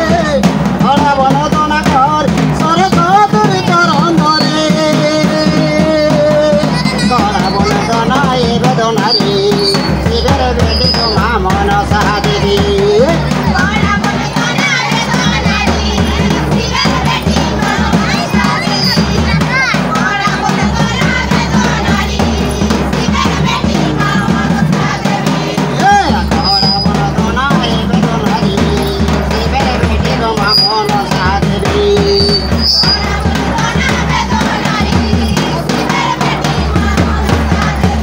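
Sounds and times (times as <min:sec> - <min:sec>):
drums keeping steady rhythm: 0:00.0 - 0:38.0
folk dance music: 0:00.0 - 0:38.0
group singing and calling out: 0:00.0 - 0:38.0.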